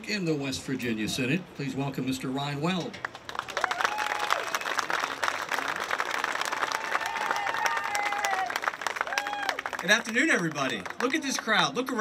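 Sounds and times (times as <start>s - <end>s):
audience applauding: 3.0s - 12.0s.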